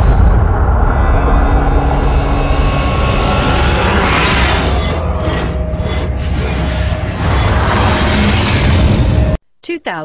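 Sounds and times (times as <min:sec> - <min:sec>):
deep rumble: 0:00.0 - 0:09.4.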